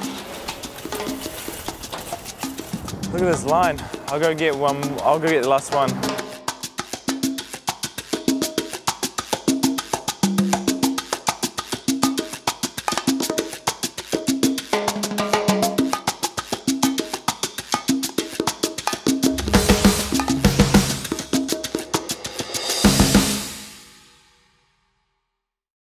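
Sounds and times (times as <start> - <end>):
upbeat music with drums and bass: 0.0 - 23.9.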